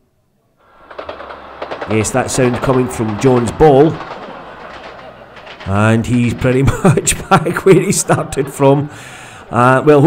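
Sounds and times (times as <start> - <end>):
train wheels clattering on rails: 0.6 - 9.6.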